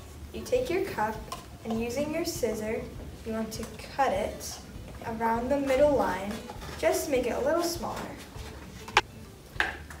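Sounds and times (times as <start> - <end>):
cup scraping on tabletop: 6.4 - 7.0.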